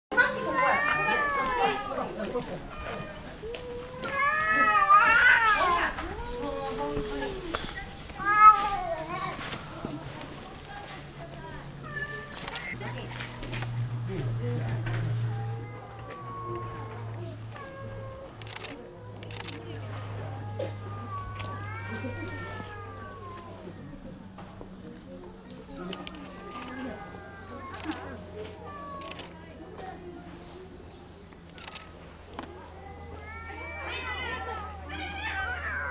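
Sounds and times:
cats meowing: 0.2 - 9.6, 11.8 - 12.8, 15.2 - 23.8, 25.8 - 29.4, 32.8 - 35.9.

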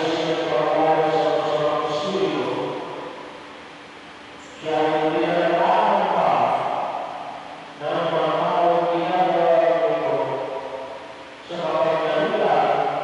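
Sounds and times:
man chanting into a microphone: 0.0 - 2.9, 11.4 - 13.0.

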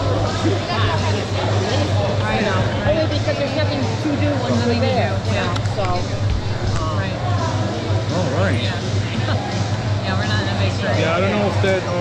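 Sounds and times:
babble of many people talking: 0.0 - 12.0
steady low hum: 0.0 - 12.0.

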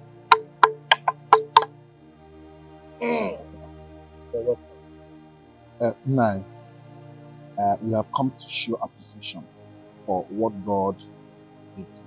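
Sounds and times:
musical drone: 0.0 - 12.0
sharp knocks: 0.3 - 1.7.

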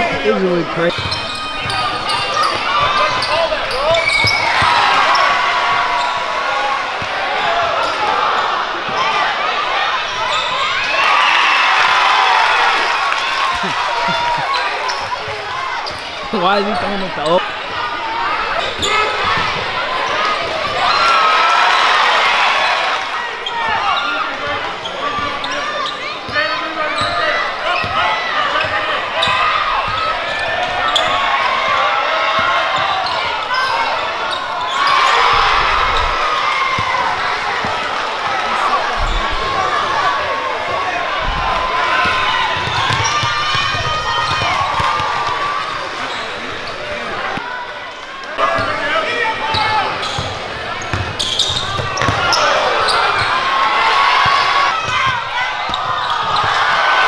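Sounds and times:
crowd cheering: 0.0 - 57.0
crowd voices and shouting: 0.0 - 57.0.

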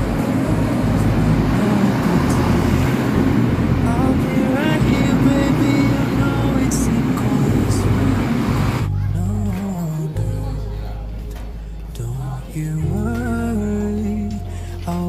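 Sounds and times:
diesel railcar engine rumble: 0.0 - 9.6
pop song playing: 0.0 - 15.0.

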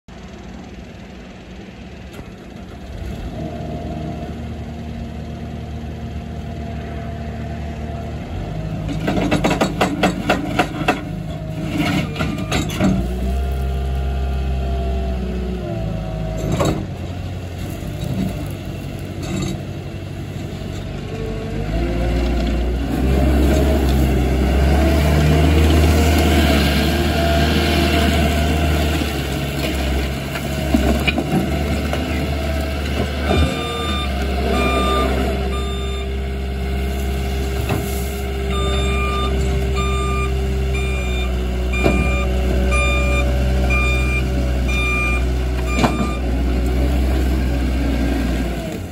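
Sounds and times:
diesel loader engine running: 0.1 - 48.9.

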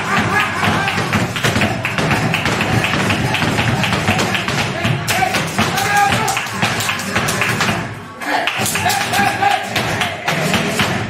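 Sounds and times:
dancer's footwork strikes: 0.0 - 7.9
hand-clapping: 0.0 - 11.0.

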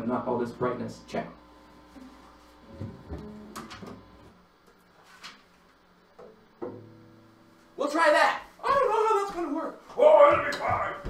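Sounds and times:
guitar handling knocks: 6.2 - 7.0.

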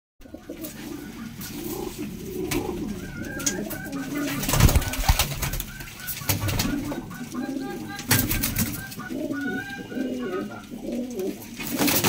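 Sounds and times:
pigeons cooing: 0.2 - 12.0.

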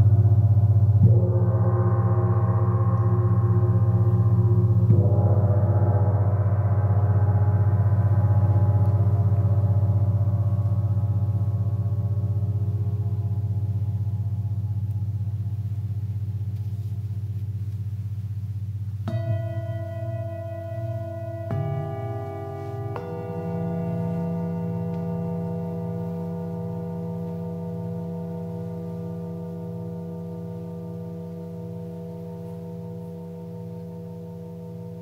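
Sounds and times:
gong ringing: 19.1 - 32.6
singing bowl ringing: 19.1 - 35.0.

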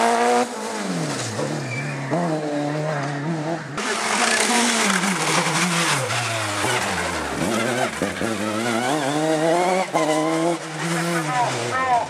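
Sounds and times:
race car engine at high revs: 0.0 - 12.0.

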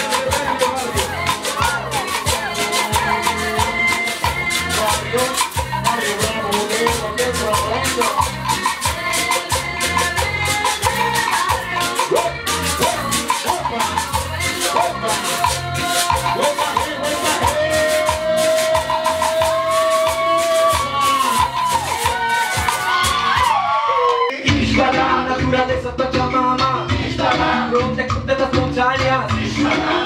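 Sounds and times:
maraca rattling: 0.0 - 24.0, 24.7 - 30.0
live hip hop band playing: 0.0 - 30.0.

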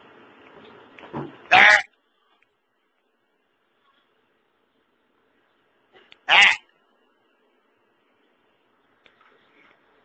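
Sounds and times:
farm animal bleating: 1.5 - 1.9, 6.3 - 6.6.

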